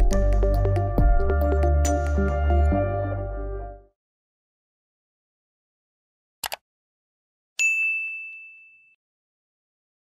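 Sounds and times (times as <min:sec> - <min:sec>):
bell ding: 0:07.6 - 0:09.0.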